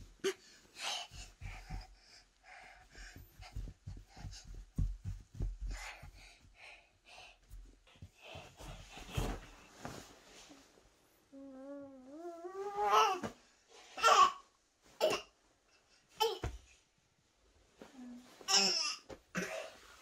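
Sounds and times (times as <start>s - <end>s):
bedding rustling: 0.0s - 6.8s, 7.4s - 11.0s, 17.5s - 20.0s
close breathing: 0.2s - 10.6s
soft thumps on a mattress: 3.0s - 6.6s, 7.5s - 10.1s, 16.4s - 16.7s.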